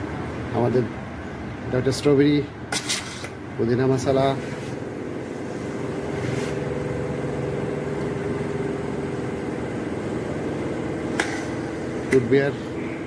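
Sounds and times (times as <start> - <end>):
soda dispenser motor hum: 4.8 - 13.0.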